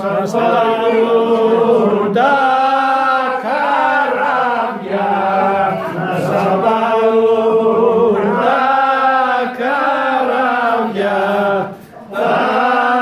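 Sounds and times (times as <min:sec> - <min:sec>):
men singing unaccompanied: 0:00.0 - 0:13.0.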